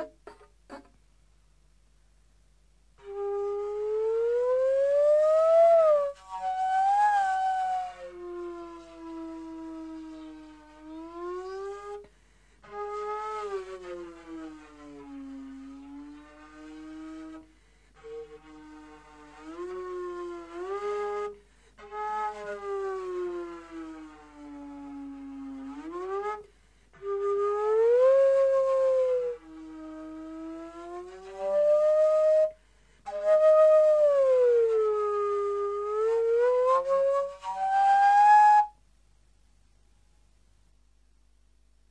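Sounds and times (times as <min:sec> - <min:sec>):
slide flute long tones: 0:03.0 - 0:38.8.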